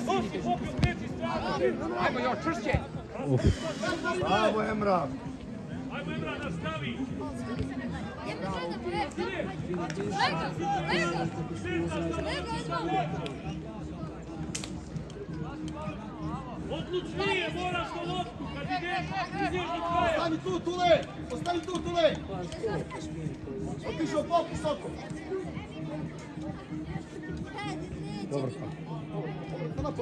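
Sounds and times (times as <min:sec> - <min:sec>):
football kick: 0:00.6 - 0:01.0.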